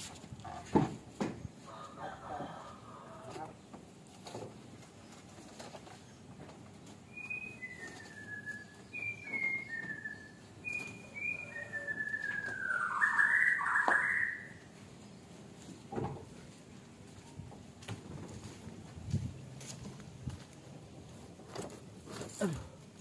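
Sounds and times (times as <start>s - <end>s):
whistled notes: 7.1s - 14.6s.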